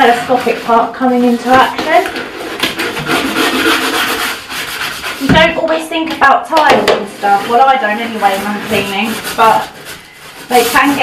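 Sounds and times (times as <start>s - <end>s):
brush scrubbing wet tiles: 0.0s - 11.0s.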